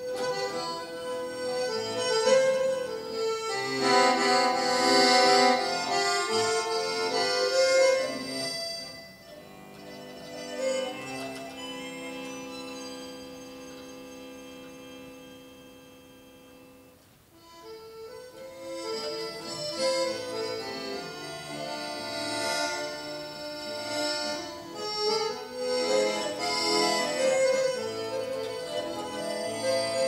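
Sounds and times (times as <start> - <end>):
accordion and violin playing: 0.0 - 30.0.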